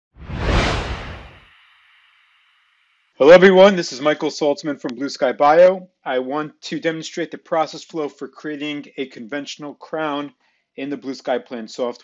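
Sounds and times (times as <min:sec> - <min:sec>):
whoosh sound effect: 0:00.1 - 0:01.5
faint high shimmer: 0:01.1 - 0:04.3.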